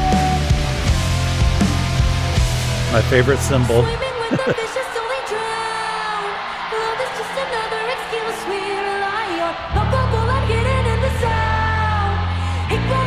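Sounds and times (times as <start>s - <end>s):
heavy bass and drums: 0.0s - 4.0s
guitar: 0.0s - 5.0s, 6.3s - 13.0s
person singing: 3.7s - 5.8s.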